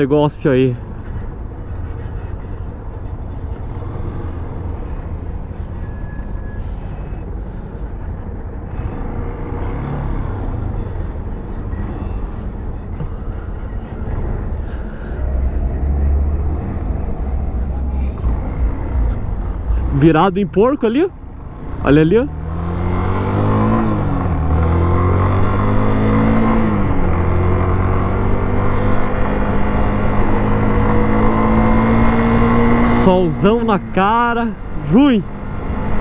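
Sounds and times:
road noise: 0.0 - 36.0
motorcycle engine low rumble: 0.8 - 36.0.

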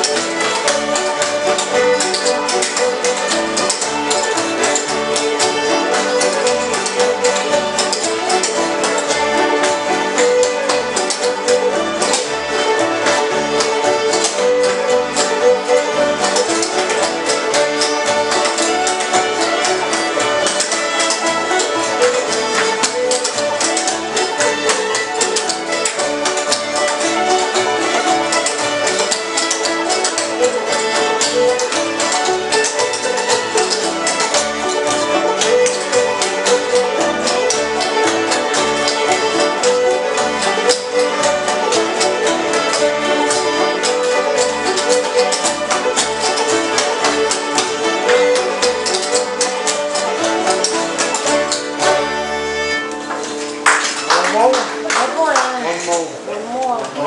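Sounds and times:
fiddles playing fast tune: 0.0 - 55.9
strummed acoustic guitars: 0.0 - 56.5.

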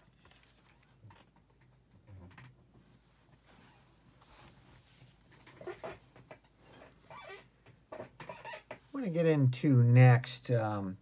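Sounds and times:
light rustling and knocks: 0.0 - 8.9
office chair creaking: 0.0 - 8.9.

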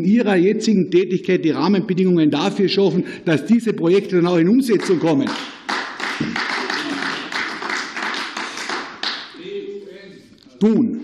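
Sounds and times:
group clapping: 4.6 - 9.4.

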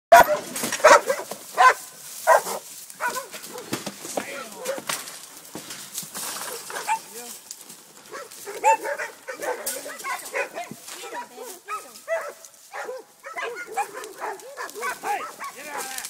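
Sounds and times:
dogs barking: 0.1 - 3.7, 4.4 - 4.9, 6.4 - 7.2, 8.0 - 16.0.

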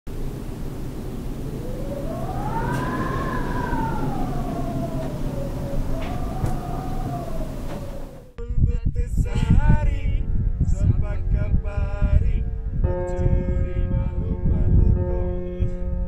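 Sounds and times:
whistling moan of wind: 0.1 - 16.0
wind on microphone: 0.1 - 16.0.

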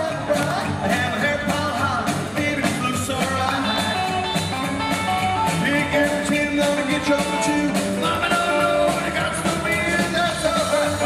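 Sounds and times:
drum kit: 0.0 - 11.0
electric guitar: 0.0 - 11.0
man singing: 0.0 - 11.0
upright bass: 0.0 - 11.0.

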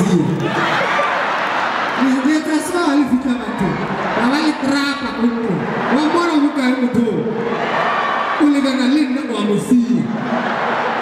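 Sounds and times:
room and audience noise: 0.0 - 11.0.

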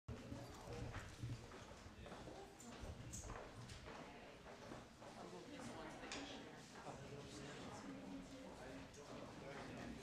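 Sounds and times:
faint murmured conversation: 0.1 - 10.0.

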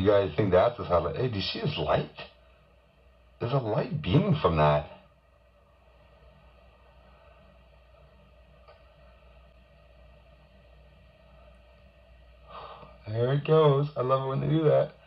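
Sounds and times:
faint background hiss: 0.0 - 15.0
low hum: 0.0 - 15.0
faint click: 8.6 - 8.9.

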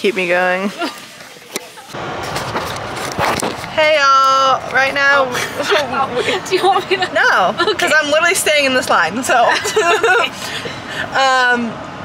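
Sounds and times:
road noise inside car: 1.8 - 12.0.

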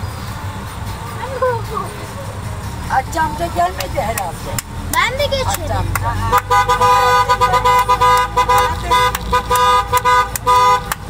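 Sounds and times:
car driving slowly: 0.0 - 11.0.

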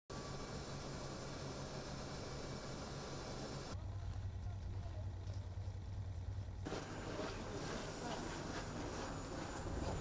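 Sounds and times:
aircraft cabin engine hiss: 0.1 - 3.8.

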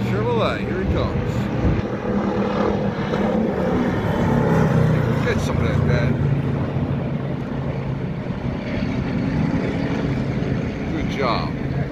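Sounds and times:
race car engine droning: 0.0 - 11.9.

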